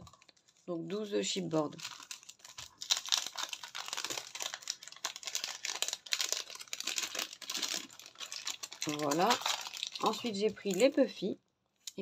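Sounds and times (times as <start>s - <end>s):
cellophane packaging crinkling: 0.0s - 11.2s.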